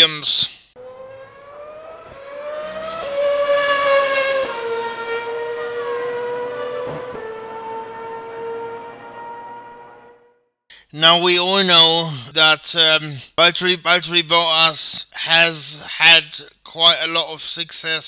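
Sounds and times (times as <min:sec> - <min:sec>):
racing car engine passing: 0:00.8 - 0:10.3.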